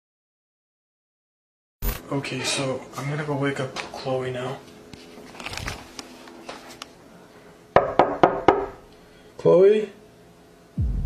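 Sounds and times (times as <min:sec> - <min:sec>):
hand knocking on wooden door: 0:07.8 - 0:08.8.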